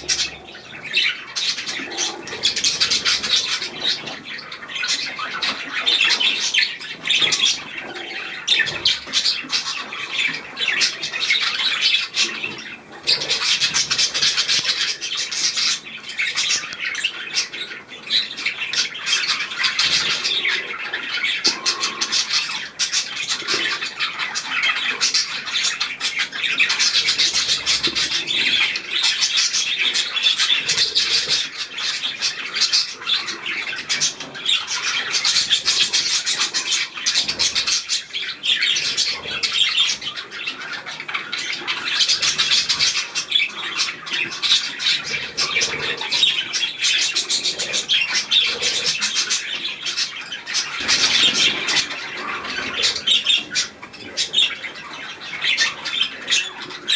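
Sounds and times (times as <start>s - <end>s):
budgerigars chattering: 0.0s - 56.9s.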